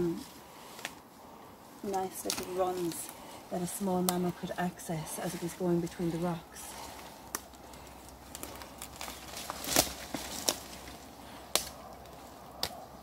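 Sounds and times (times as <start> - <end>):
twigs snapping: 0.0 - 1.0, 1.8 - 13.0
rustling of moss and leaf litter: 0.0 - 13.0.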